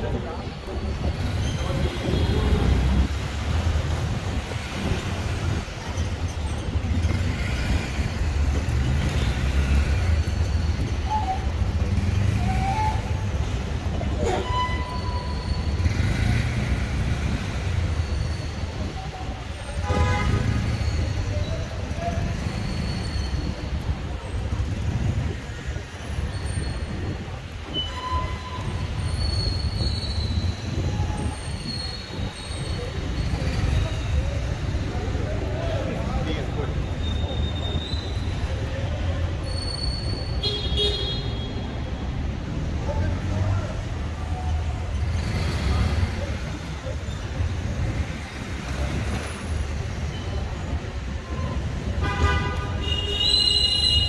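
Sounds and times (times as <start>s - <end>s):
car traffic: 0.0s - 54.0s.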